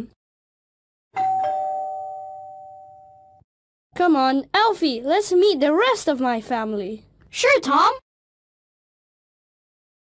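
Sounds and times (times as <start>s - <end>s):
two-note ding-dong chime: 1.2s - 3.4s.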